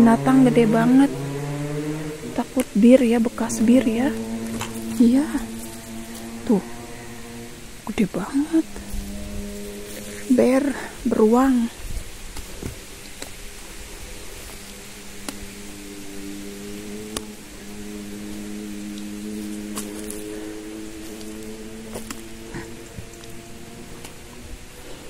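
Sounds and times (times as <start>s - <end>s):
soft music with sustained chords: 0.0s - 25.0s
footsteps on forest floor: 2.5s - 7.1s, 9.6s - 15.6s, 18.2s - 25.0s.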